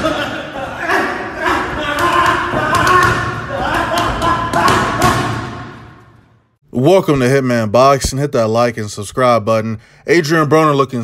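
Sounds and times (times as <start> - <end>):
people talking: 6.8 - 11.0.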